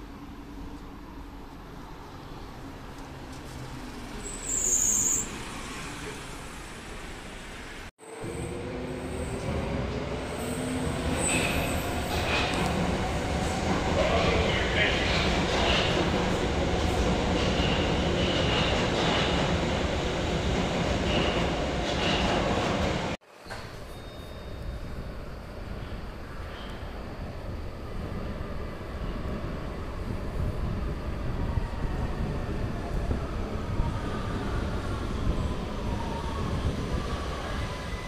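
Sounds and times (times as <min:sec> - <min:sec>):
train rolling rumble: 0:00.0 - 0:38.0
bus pulling away: 0:02.2 - 0:13.3
high wheel squeals: 0:03.8 - 0:06.9, 0:23.4 - 0:25.1.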